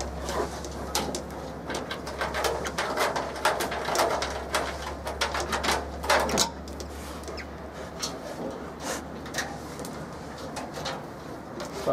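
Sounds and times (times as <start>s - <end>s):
claws clicking on metal cage: 0.0s - 11.8s
steady low hum: 0.0s - 11.9s.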